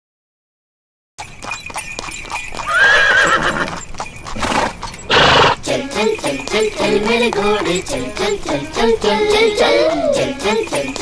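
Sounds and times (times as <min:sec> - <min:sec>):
hooves clip-clopping: 0:01.2 - 0:11.0
cartoon horse neighing: 0:04.4 - 0:05.6.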